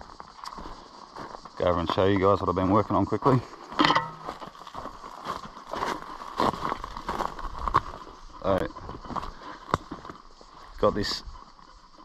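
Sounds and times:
footsteps crunching on leaves: 4.2 - 8.2.

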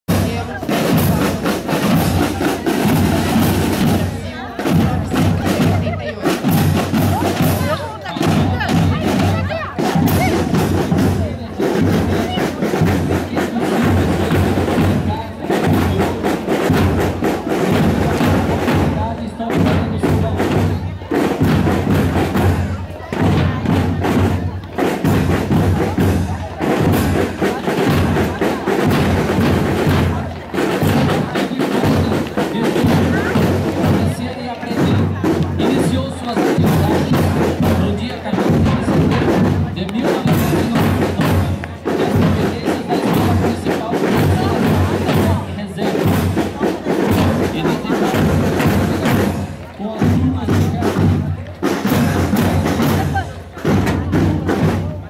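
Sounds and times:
bass and snare drums march beat: 0.0 - 55.0.

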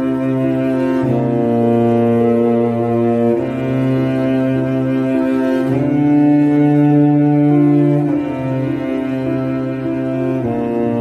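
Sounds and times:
bowed cello notes: 0.0 - 11.0.

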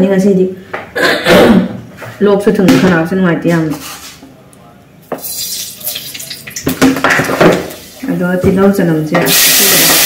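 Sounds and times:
dishes and utensils clattering: 5.2 - 7.8.

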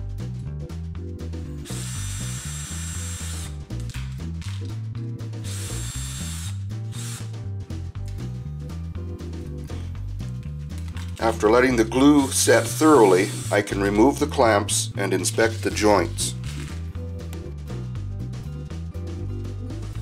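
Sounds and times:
background music: 0.0 - 20.0
cordless drill running in bursts: 1.7 - 3.5, 5.4 - 7.3, 12.1 - 13.7.

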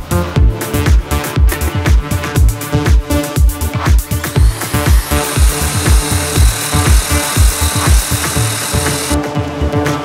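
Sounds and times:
core drill boring into brick: 4.0 - 9.2
electronic dance music: 4.4 - 9.2.

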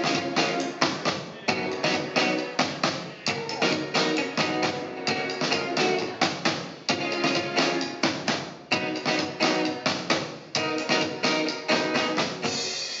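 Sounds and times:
drum hits: 0.0 - 13.0.

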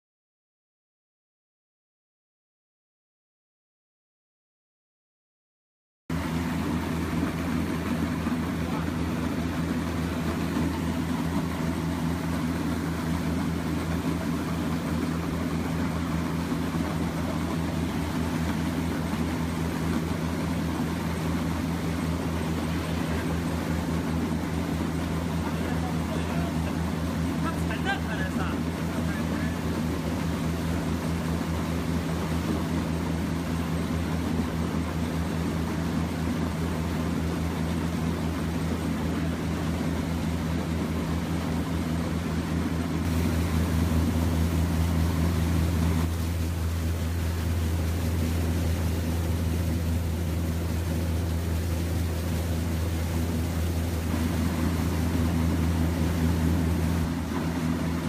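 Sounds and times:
washing machine humming: 6.1 - 58.0.

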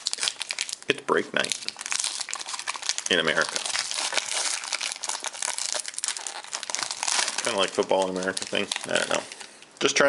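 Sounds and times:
foil wrapper crinkling: 0.0 - 9.7.

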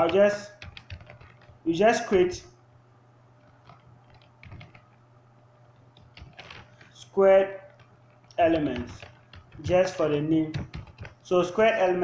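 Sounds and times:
keyboard keystrokes: 0.0 - 1.6, 3.4 - 5.0, 5.8 - 7.0, 7.6 - 11.2
low steady hum: 0.0 - 12.0.

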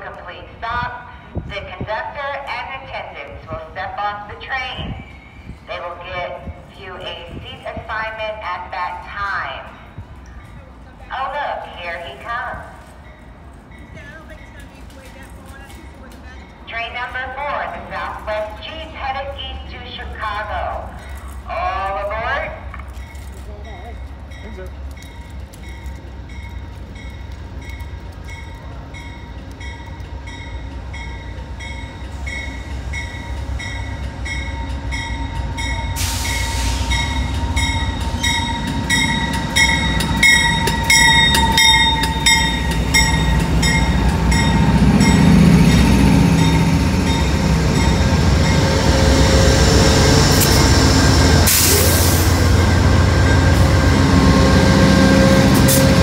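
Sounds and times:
locomotive bell ringing: 22.9 - 56.0
high brake squeal: 35.9 - 37.2
air hiss: 36.0 - 37.1.

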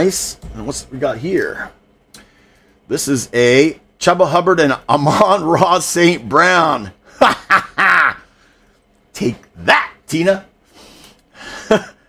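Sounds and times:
man laughing: 7.0 - 8.4, 11.4 - 12.0.

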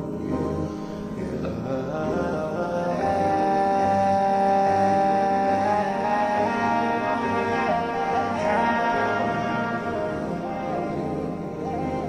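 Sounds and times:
instrumental hip-hop music: 0.0 - 12.0.

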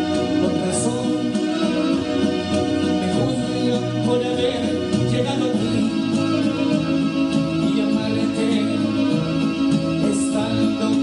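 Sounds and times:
accompanying music: 0.0 - 11.0
man singing into microphone: 0.0 - 11.0.

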